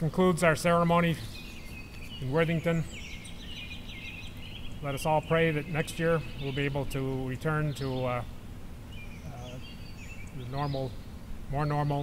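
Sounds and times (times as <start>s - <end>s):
low background noise: 0.0s - 12.0s
songbirds chirping: 0.0s - 12.0s.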